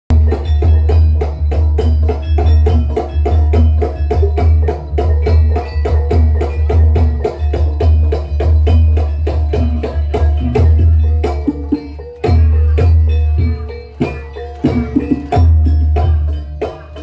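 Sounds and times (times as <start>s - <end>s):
percussion ensemble interlocking strikes: 0.1s - 17.0s.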